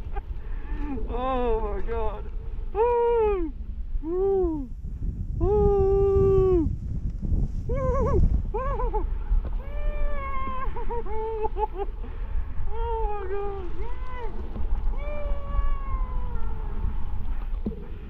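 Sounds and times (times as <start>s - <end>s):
wind rushing on microphone: 0.0s - 18.0s
person whooping: 2.8s - 4.7s, 5.4s - 6.7s, 7.7s - 11.8s, 12.7s - 17.0s
snowboard sliding on snow: 6.1s - 12.2s.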